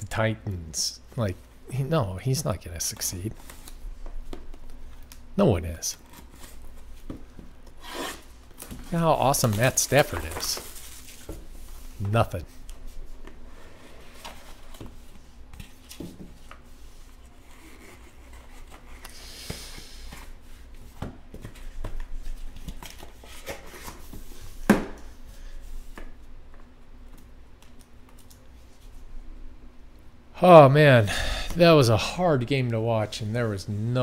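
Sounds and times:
cards and box handling: 8.6 - 11.3.

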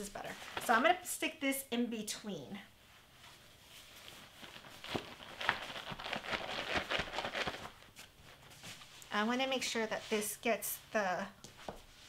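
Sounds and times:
fabric rustling and brushing: 2.8 - 12.0.

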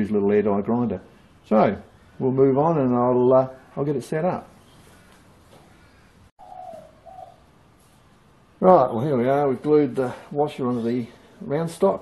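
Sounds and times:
faint room hiss: 0.0 - 12.0
bird cooing: 5.8 - 7.4.

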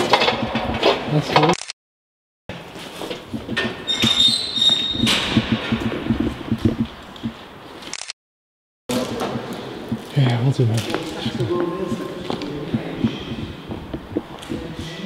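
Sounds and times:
high squeak: 3.8 - 5.4.

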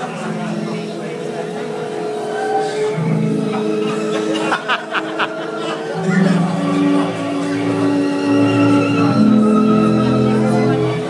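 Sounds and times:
sustained chord over speakers: 0.0 - 11.0.

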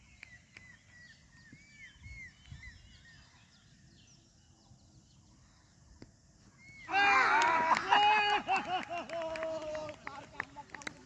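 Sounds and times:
faint bird chirps: 0.0 - 7.0.

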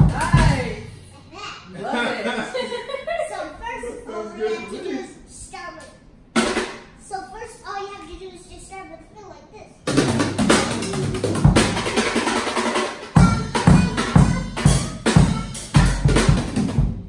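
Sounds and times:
bass drum kicks: 0.0 - 1.0, 9.9 - 12.0, 13.2 - 17.0
drum kit playing: 0.0 - 1.2, 6.3 - 7.0, 9.8 - 17.0.

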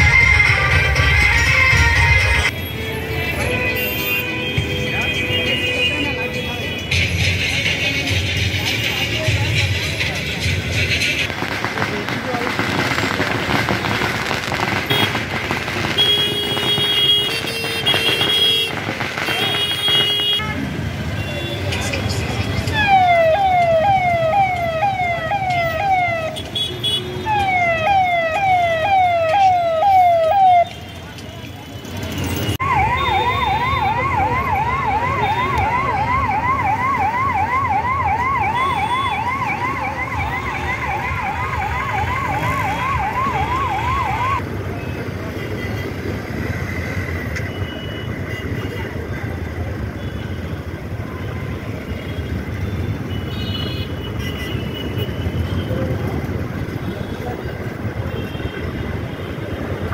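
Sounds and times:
traffic engine and street noise: 0.0 - 59.9
electronic vehicle siren: 22.7 - 26.4, 27.2 - 30.8, 32.5 - 44.4.

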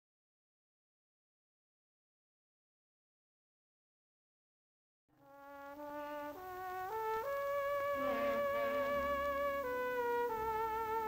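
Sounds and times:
sustained orchestral chord: 7.8 - 10.8.

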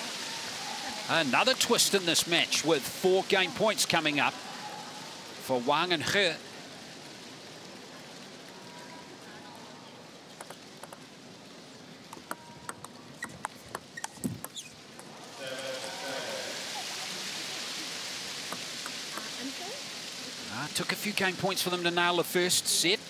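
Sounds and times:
table tennis ball clicking: 12.1 - 15.1
crowd applauding and cheering: 15.4 - 17.1.

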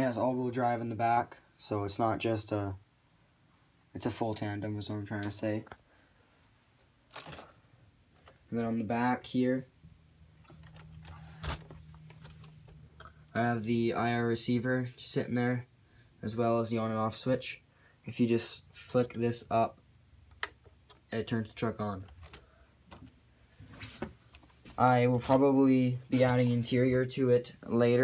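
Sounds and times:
soft rustle: 22.4 - 25.5.

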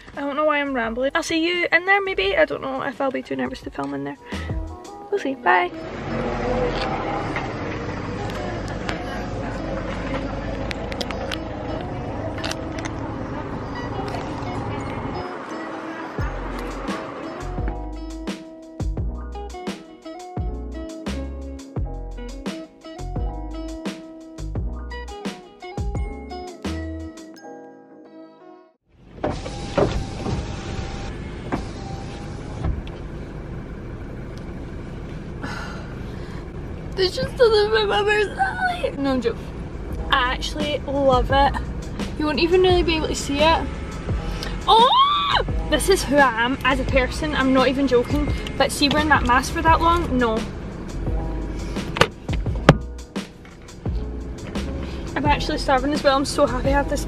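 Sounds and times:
street traffic rumble: 0.0 - 25.2, 28.9 - 57.0
background music: 0.0 - 28.8, 37.0 - 57.0
rushing noise inside car cabin: 29.0 - 56.3
sharp clicks and knocks: 51.9 - 53.8.

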